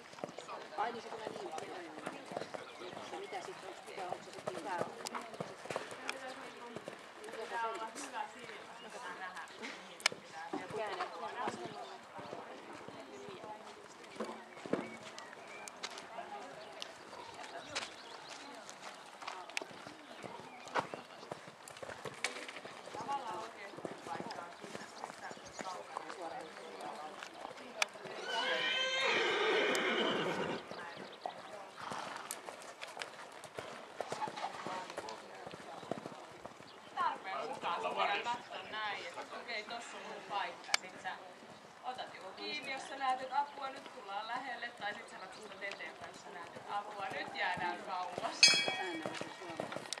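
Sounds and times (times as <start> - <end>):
horse hoofbeats on sand: 0.2 - 28.0
horse whinnying: 28.1 - 30.7
metallic ring: 48.4 - 49.0.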